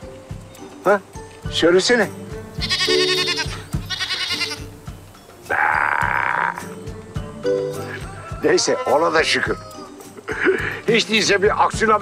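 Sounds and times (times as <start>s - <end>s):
goat bleating: 2.6s - 4.7s, 5.5s - 6.7s.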